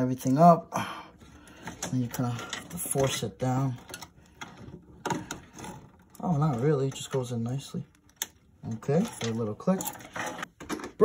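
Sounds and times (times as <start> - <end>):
cables rubbing: 1.2 - 10.6.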